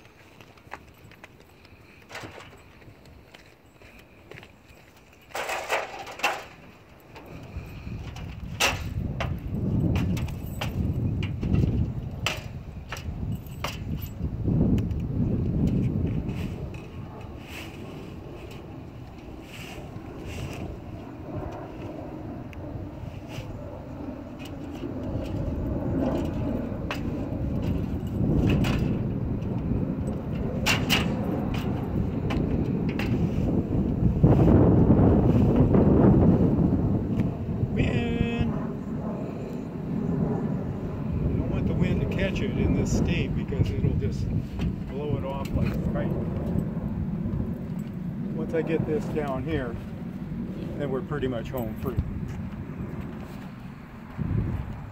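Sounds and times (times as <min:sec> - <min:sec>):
wind rumble on microphone: 0:00.0 - 0:54.9.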